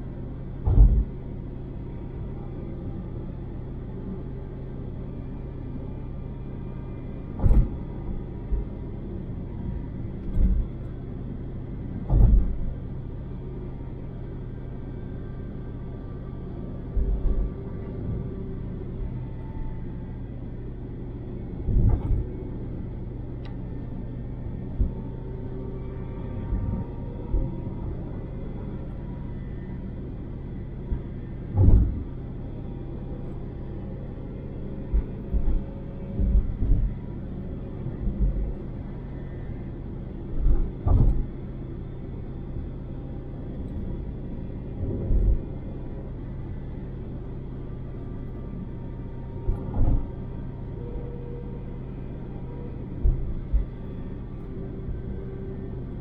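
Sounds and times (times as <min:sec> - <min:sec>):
car road and engine drone: 0:00.0 - 0:56.0.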